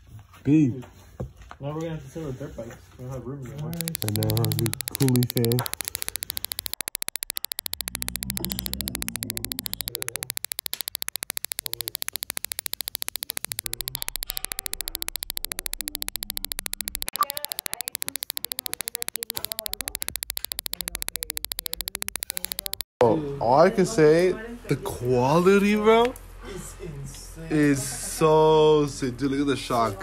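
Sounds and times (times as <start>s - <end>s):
electronic static crackle: 3.8s - 22.9s.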